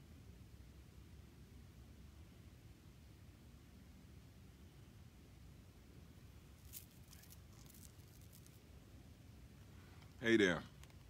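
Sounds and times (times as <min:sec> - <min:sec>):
faint rustles and clicks: 0:06.5 - 0:08.8.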